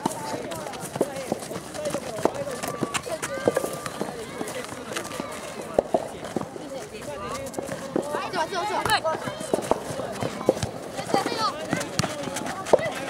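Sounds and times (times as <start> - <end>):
players shouting: 0.0 - 13.0.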